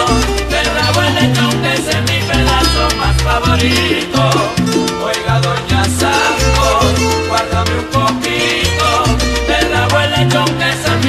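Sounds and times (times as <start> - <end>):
steady percussion: 0.0 - 8.4
bass line: 0.5 - 7.0
melody instruments: 2.3 - 5.0.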